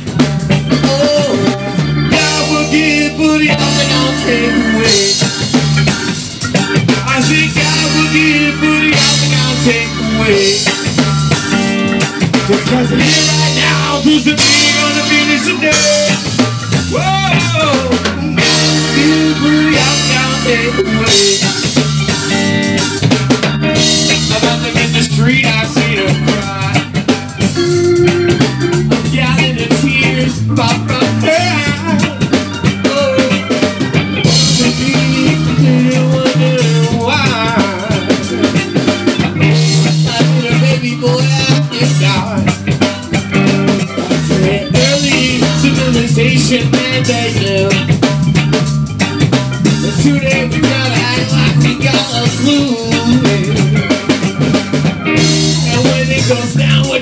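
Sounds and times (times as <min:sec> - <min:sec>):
reggae band playing: 0:00.0 - 0:57.0.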